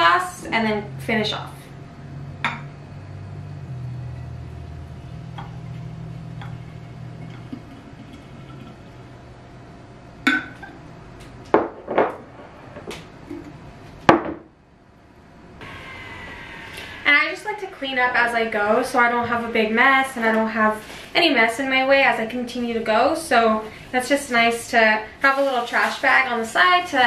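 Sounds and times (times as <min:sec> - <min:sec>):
glassware clinking and knocking: 0:10.3 - 0:10.8.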